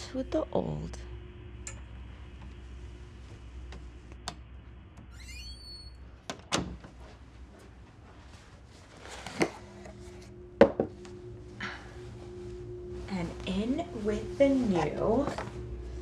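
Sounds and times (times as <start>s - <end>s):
closet door squeak and thunk: 5.1s - 6.8s.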